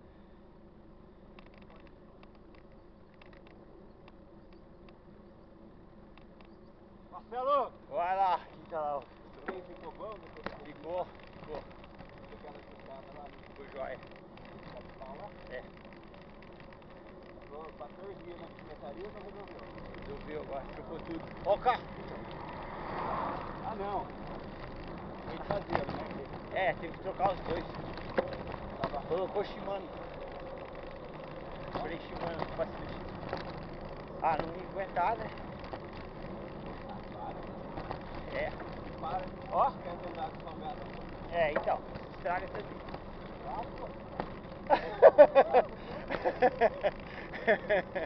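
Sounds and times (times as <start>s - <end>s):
road rumble: 0.0s - 48.0s
wind: 0.0s - 48.0s.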